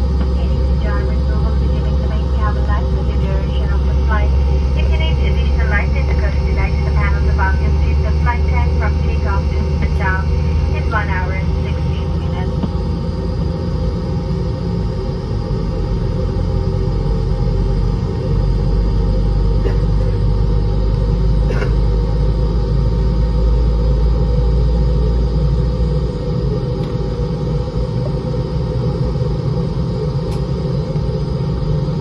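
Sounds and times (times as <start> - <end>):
aircraft cabin engine drone: 0.0 - 32.0
voices: 0.2 - 12.7.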